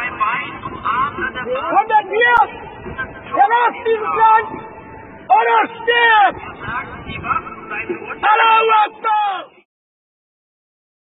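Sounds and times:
man shouting: 1.5s - 2.5s, 3.3s - 4.6s, 5.3s - 6.4s, 8.2s - 9.6s.

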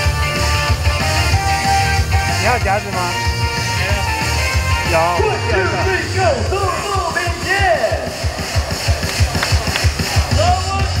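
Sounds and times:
fast drum beat: 0.0s - 11.0s
stadium cheer music: 0.0s - 11.0s.

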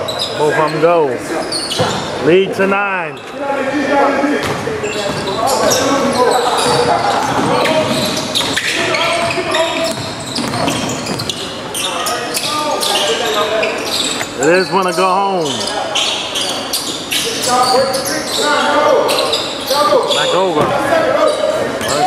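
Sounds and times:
voices: 0.0s - 22.0s.

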